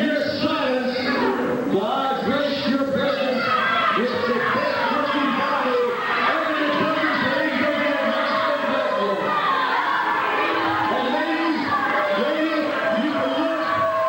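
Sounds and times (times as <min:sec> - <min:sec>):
man talking over pa: 0:00.0 - 0:09.2, 0:10.9 - 0:14.0
crowd noise: 0:00.0 - 0:14.0.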